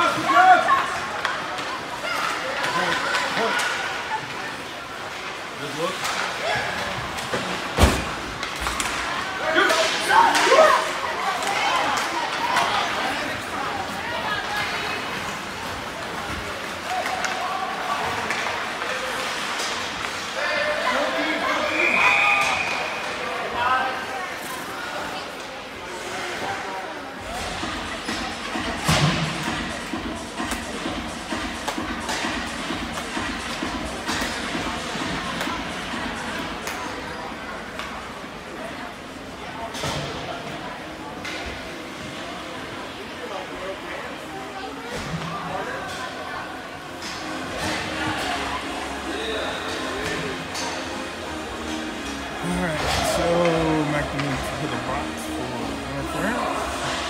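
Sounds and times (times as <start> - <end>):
slam against rink boards: 7.7 - 8.2.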